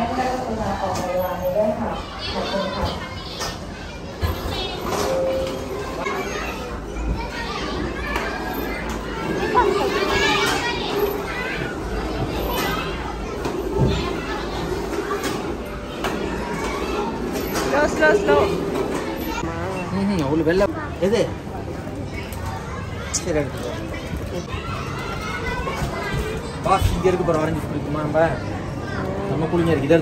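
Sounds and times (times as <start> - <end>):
children's voices and chatter: 0.0 - 30.0.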